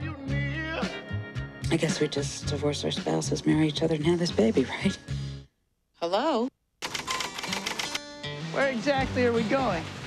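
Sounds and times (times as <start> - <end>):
typewriter keys clattering: 6.8 - 8.0.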